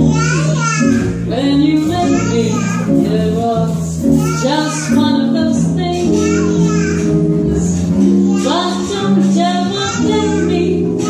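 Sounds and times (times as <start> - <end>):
jazz guitar: 0.0 - 11.0
upright double bass: 0.0 - 11.0
woman singing into a microphone: 1.3 - 6.2, 7.4 - 11.0.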